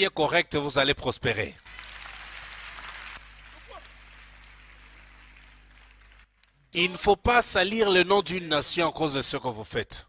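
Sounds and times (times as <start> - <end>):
low steady hum: 1.4 - 8.8
faint congregation applause: 1.6 - 6.7.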